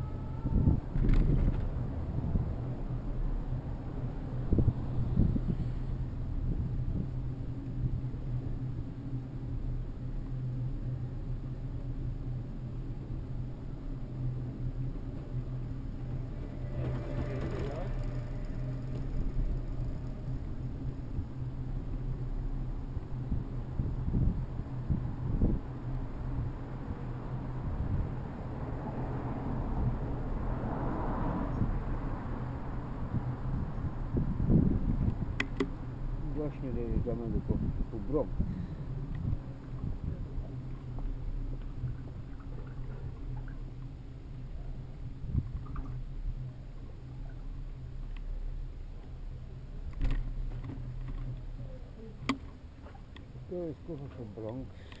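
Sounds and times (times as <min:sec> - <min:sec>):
wind noise on microphone: 0:00.0 - 0:10.1, 0:10.7 - 0:53.6
bicycle tyres rumbling on road: 0:00.0 - 0:53.5.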